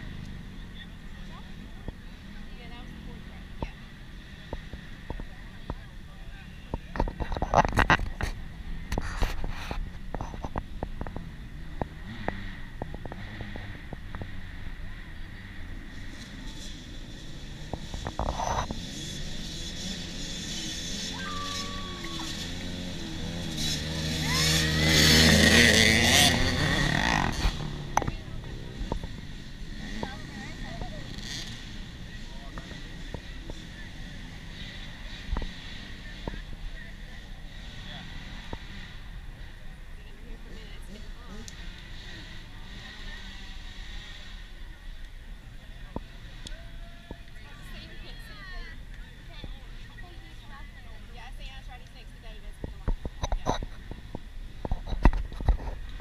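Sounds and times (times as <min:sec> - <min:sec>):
dirt bike engines revving: 0:00.0 - 0:56.0.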